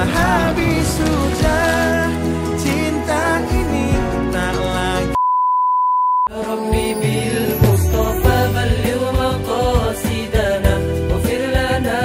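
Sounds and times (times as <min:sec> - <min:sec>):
music with singing: 0:00.0 - 0:05.2, 0:06.3 - 0:12.0
test tone beep: 0:05.2 - 0:08.5.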